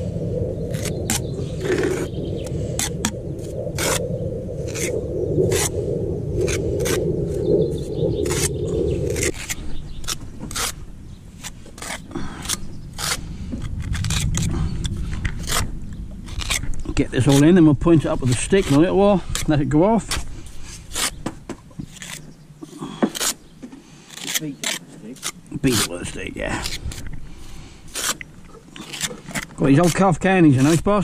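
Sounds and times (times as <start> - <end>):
steady low hum: 0.0 - 21.4
trowel scraping mortar: 9.1 - 10.8, 11.4 - 13.2, 18.2 - 21.2, 24.1 - 27.1, 27.9 - 31.0.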